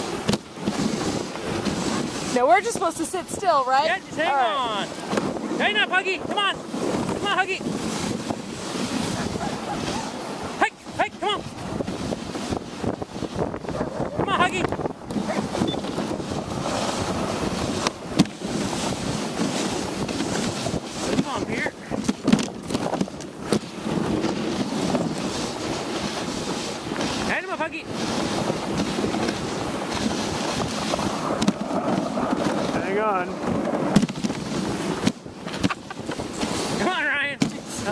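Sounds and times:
sled runners scraping over snow: 0.0s - 37.9s
wind buffeting microphone: 0.0s - 37.9s.

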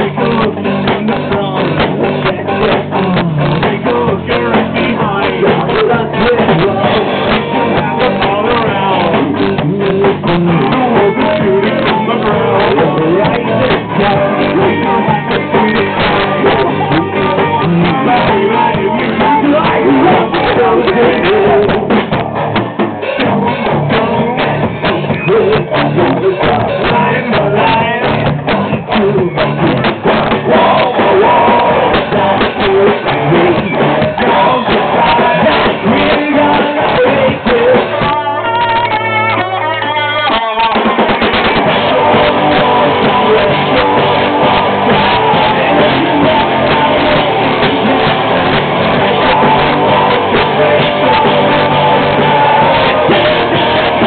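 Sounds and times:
drum kit beating: 0.0s - 54.0s
electric guitars: 0.0s - 54.0s
person singing: 0.0s - 54.0s
rock band playing live: 0.0s - 54.0s.

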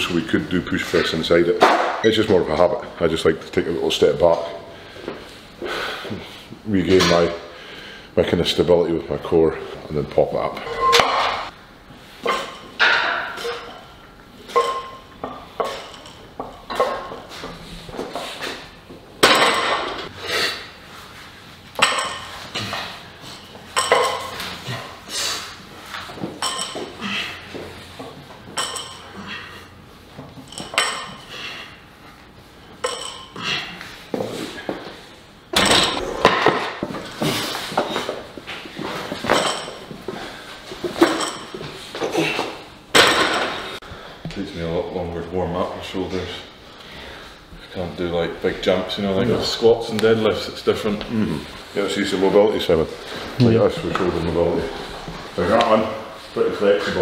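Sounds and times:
weight plates clanking: 10.6s - 11.5s.

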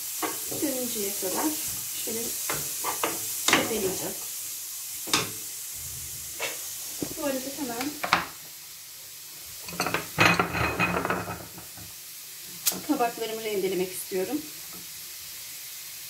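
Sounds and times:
carrots sizzling in hot oil: 0.0s - 16.0s.

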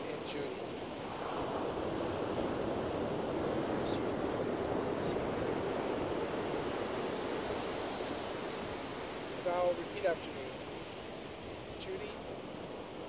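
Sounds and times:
ocean surf rushing: 0.0s - 13.0s
wind: 0.0s - 13.0s.

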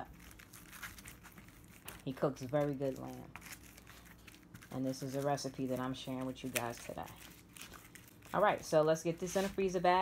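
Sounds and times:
paper crinkling: 0.0s - 10.0s.

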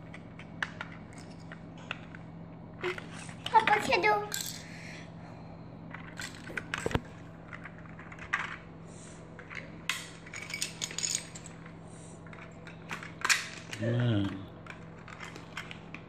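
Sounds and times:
toy bricks clicking and clattering: 14.6s - 15.8s.

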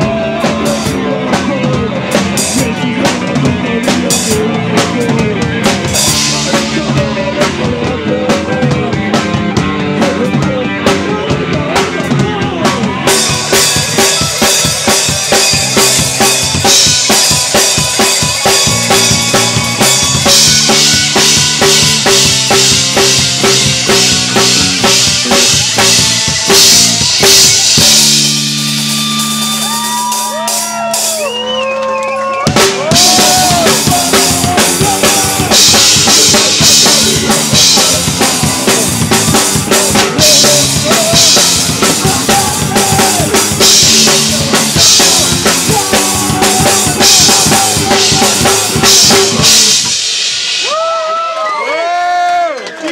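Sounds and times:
punk band playing: 0.0s - 52.9s
drum hits: 11.8s - 30.9s, 32.5s - 51.0s.

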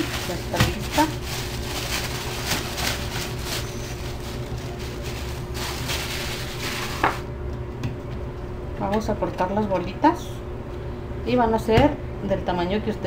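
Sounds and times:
plastic bag crinkling: 0.0s - 7.2s.

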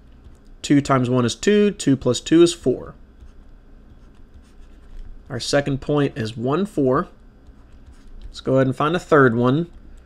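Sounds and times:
low steady hum: 0.0s - 10.0s
stylus scratching on pen tablet: 3.2s - 9.8s.

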